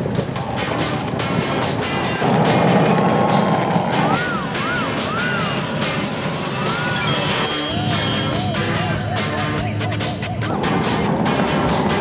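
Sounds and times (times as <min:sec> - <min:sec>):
background music with steady beat: 0:00.0 - 0:12.0
wavering synth pitch swoops: 0:03.8 - 0:08.7.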